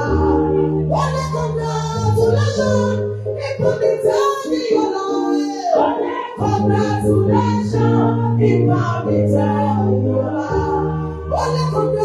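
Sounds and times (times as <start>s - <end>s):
musical accompaniment low notes: 0.0s - 12.0s
woman singing into microphone: 0.0s - 12.0s.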